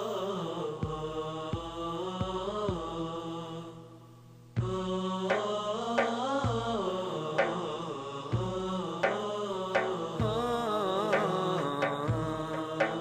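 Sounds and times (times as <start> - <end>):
chorus chanting wordless melody: 0.0 - 13.0
percussion hits: 4.6 - 6.8, 7.4 - 7.7, 8.4 - 13.0.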